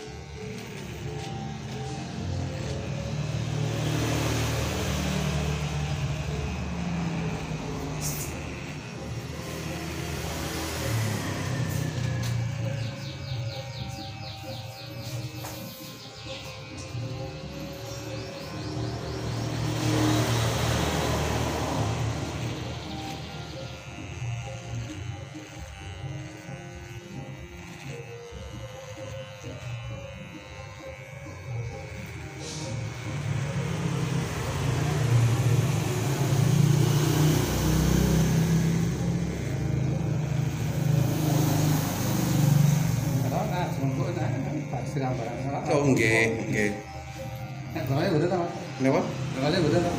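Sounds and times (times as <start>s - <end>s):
road traffic: 0.0s - 28.4s, 30.4s - 49.9s
background music: 0.0s - 41.5s
electric hair clipper buzzing: 0.0s - 49.9s
vehicle passing: 1.9s - 14.6s, 17.1s - 24.6s, 32.8s - 45.4s, 46.5s - 49.9s.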